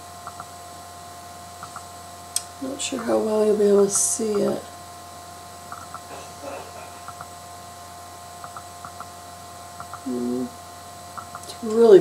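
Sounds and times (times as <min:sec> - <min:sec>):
electrical hum: 0:00.0 - 0:12.0
faint murmur: 0:06.0 - 0:07.2.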